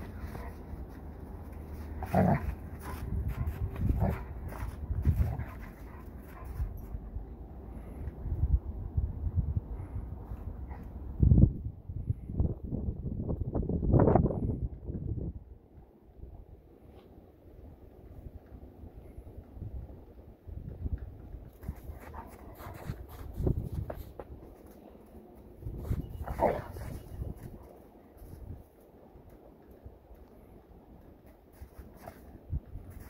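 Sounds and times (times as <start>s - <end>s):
paws scuffling in snow: 0.0s - 7.0s, 21.6s - 28.7s, 31.2s - 33.0s
wind rumble on microphone: 0.0s - 16.9s, 17.5s - 24.8s, 25.5s - 28.7s, 31.5s - 33.0s.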